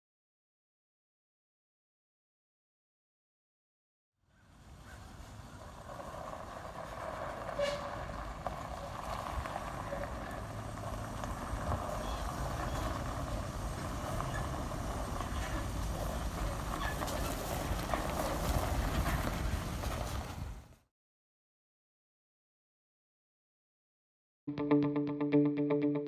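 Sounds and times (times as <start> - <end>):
trailer rolling on gravel: 4.4 - 20.8
truck engine: 4.5 - 20.7.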